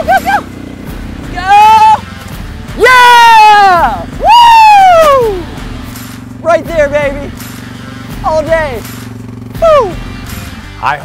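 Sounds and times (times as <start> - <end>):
riders whooping and yelling: 0.0 - 10.2
four-wheeler engine humming: 0.0 - 11.0.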